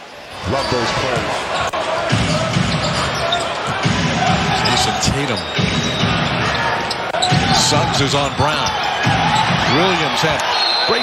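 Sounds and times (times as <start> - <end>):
crowd noise: 0.0 - 11.0
commentator speaking: 7.5 - 8.7.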